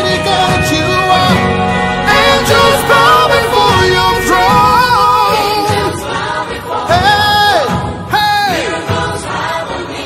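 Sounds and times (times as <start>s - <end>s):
band accompaniment: 0.0s - 9.6s
lead voice and choir singing: 0.0s - 10.0s.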